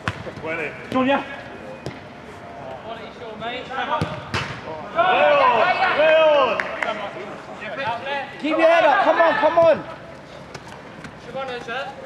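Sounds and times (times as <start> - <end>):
football being kicked: 4.0 - 4.6.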